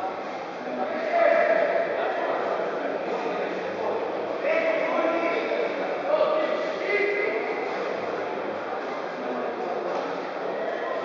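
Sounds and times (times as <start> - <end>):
sports hall din: 0.0 - 11.0.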